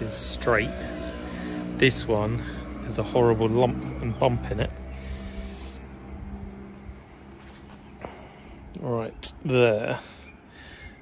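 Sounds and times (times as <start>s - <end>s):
low rumble: 0.0s - 8.8s
distant engine humming: 0.0s - 11.0s.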